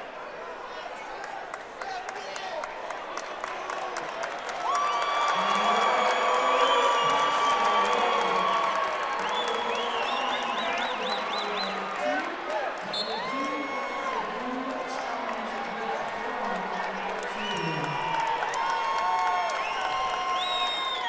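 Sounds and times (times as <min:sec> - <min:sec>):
crowd cheering: 0:00.0 - 0:21.0
crowd talking and shouting: 0:00.0 - 0:21.0.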